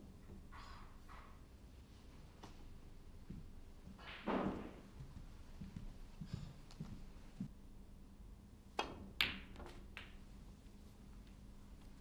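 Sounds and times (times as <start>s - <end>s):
snooker balls colliding: 4.0s - 4.9s, 8.8s - 10.2s.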